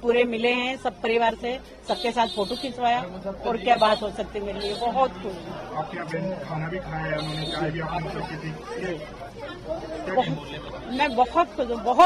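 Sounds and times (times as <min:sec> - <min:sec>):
people chattering quietly: 0:00.0 - 0:12.0.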